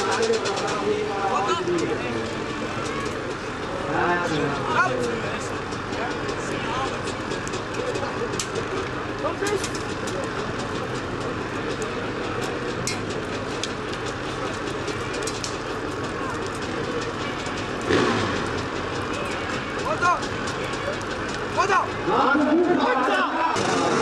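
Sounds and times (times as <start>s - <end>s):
crowd voices: 0.0s - 24.0s
motorcycle engines: 0.0s - 24.0s.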